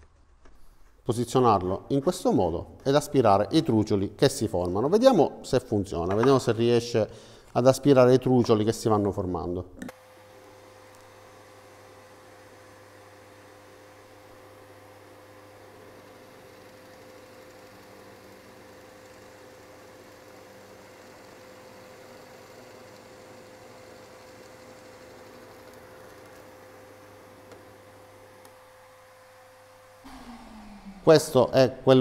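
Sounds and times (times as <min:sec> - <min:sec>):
vacuum running: 0:09.9 - 0:32.0
drill press humming: 0:30.1 - 0:32.0.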